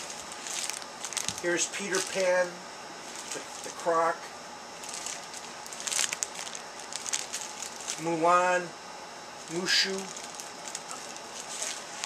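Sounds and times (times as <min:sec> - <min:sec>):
plastic packaging crinkling: 0:00.0 - 0:03.8, 0:04.8 - 0:08.2, 0:09.4 - 0:12.0.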